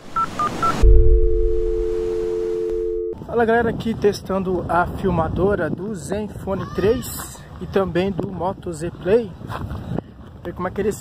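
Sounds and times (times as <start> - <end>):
high electronic beeps: 0.2 - 3.2
low two-note electronic tone: 0.7 - 3.2
loud low hit: 0.8 - 2.4.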